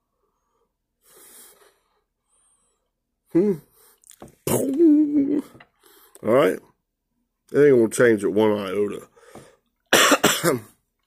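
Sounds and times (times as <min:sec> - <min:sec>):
man breathing: 0:00.0 - 0:04.2, 0:05.5 - 0:06.2, 0:09.1 - 0:09.7.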